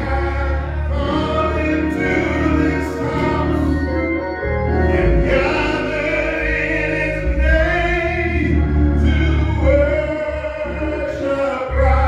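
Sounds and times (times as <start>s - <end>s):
man singing gospel: 0.0s - 12.0s
organ: 0.0s - 12.0s
voices singing along: 0.0s - 12.0s.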